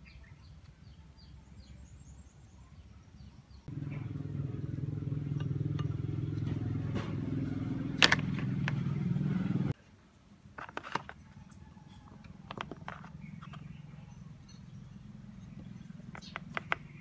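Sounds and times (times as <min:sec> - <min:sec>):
low motor hum: 0:03.7 - 0:09.8.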